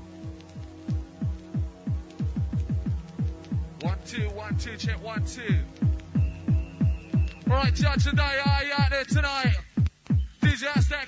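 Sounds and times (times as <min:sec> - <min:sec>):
electronic kick drum beats: 0:00.0 - 0:11.0.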